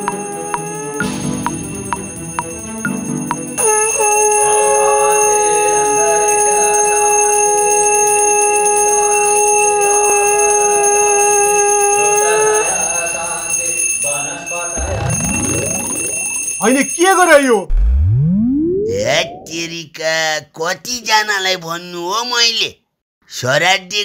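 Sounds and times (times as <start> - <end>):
conch shell blown: 0.0 - 2.5, 3.3 - 12.7
ritual bell ringing: 0.0 - 17.3
swooping sound effects: 14.8 - 16.4, 17.7 - 19.8.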